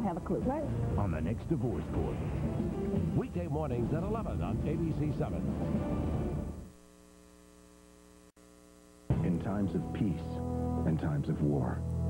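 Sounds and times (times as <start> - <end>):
faint mains hum: 0.0 - 12.0
promo soundtrack music: 0.6 - 6.6, 9.1 - 12.0.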